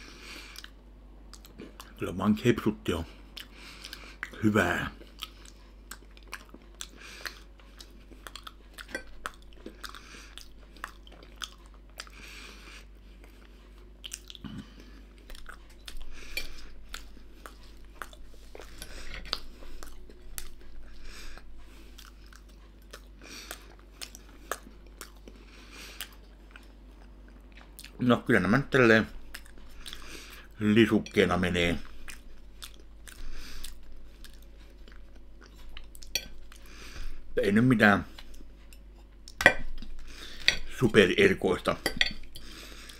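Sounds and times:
man chewing: 0.0s - 2.0s, 3.2s - 28.0s, 28.8s - 30.6s, 31.5s - 41.0s, 41.9s - 42.9s.

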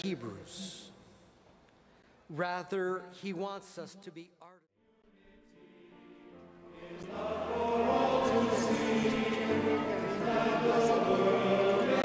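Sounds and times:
choir singing a slow hymn: 5.2s - 12.0s.

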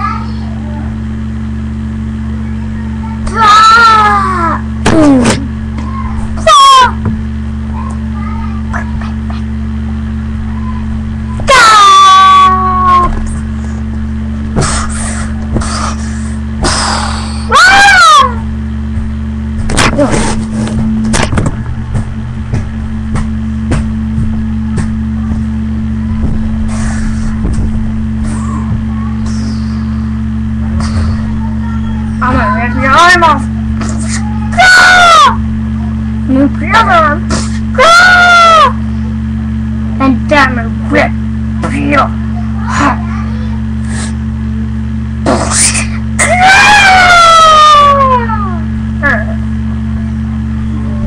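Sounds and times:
electrical hum: 0.0s - 51.0s
high-pitched squealing cry: 3.3s - 4.6s, 6.4s - 7.0s, 11.5s - 13.1s, 17.5s - 18.4s, 33.9s - 35.4s, 45.6s - 48.6s.

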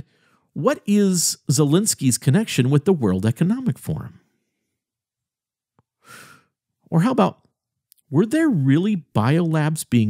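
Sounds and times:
man's in-breath: 0.0s - 0.5s, 6.0s - 6.6s
man speaking: 0.6s - 4.2s, 6.9s - 10.0s.

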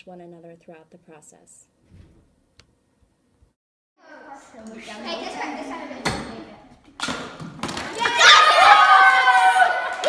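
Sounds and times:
children shrieking and cheering: 7.9s - 10.0s.

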